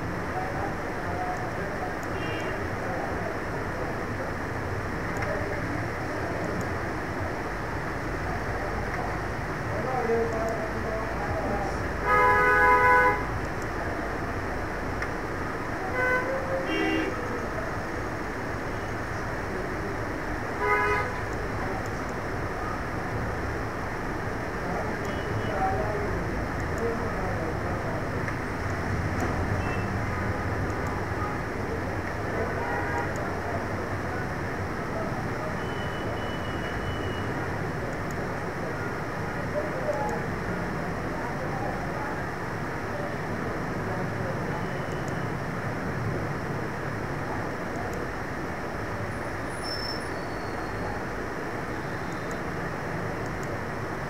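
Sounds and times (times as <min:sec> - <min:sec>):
steady background noise: 0:00.0 - 0:54.0.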